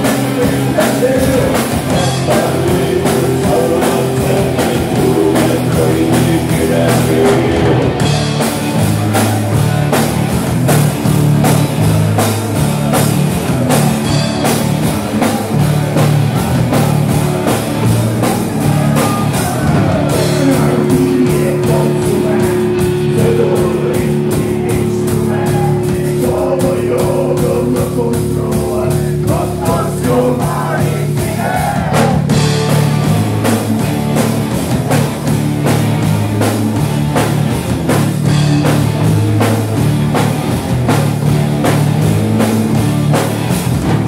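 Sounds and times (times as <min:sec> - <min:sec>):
person singing: 0:00.0 - 0:08.0, 0:18.0 - 0:32.4
bass guitar: 0:00.0 - 0:44.0
drum kit: 0:00.0 - 0:44.0
electric guitars: 0:00.0 - 0:44.0.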